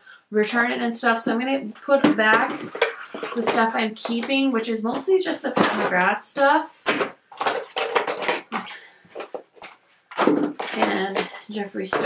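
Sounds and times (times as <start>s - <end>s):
packaging rustling: 6.9s - 11.5s
packaging clattering knocks: 6.9s - 12.0s.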